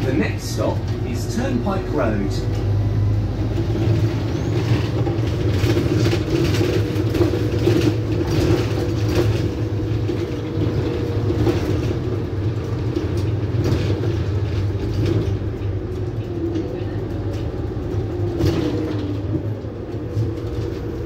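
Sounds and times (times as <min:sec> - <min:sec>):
bus engine running: 0:00.0 - 0:21.0.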